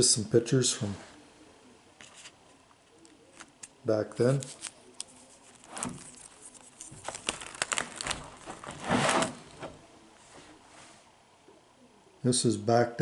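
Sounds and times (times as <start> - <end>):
page rustling: 2.0 - 2.4, 3.3 - 10.6
plastic pages clicking and crinkling: 3.0 - 9.8.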